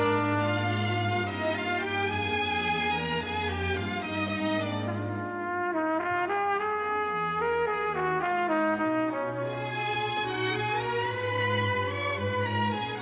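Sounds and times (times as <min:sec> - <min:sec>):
orchestral strings: 0:00.0 - 0:13.0
solo trumpet melody: 0:00.0 - 0:13.0.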